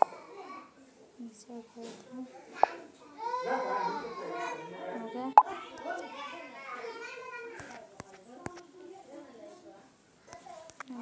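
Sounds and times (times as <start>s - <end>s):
children talking: 0.0s - 11.0s.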